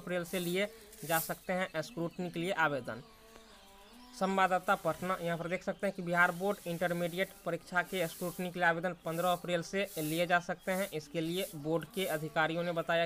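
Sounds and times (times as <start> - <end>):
man talking: 0.0 - 3.0, 4.2 - 13.0.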